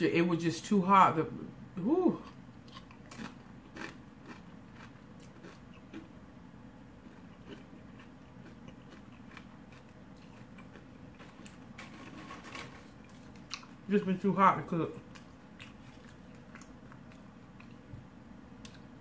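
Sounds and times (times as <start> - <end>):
person chewing chips: 2.2 - 13.9, 15.0 - 17.9.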